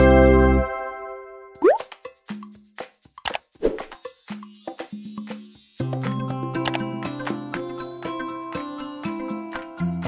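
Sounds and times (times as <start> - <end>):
rising cartoon bloop: 1.6 - 1.8.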